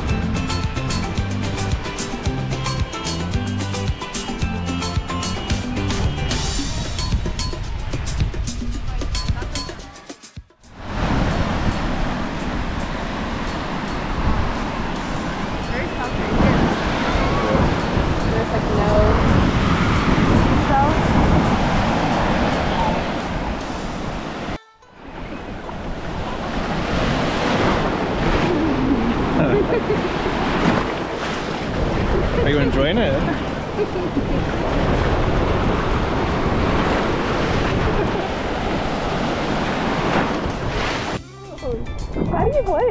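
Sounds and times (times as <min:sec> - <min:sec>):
music: 0:00.0 - 0:25.7, 0:41.2 - 0:42.9
ocean surf: 0:00.0 - 0:41.9
wind buffeting microphone: 0:10.7 - 0:42.9.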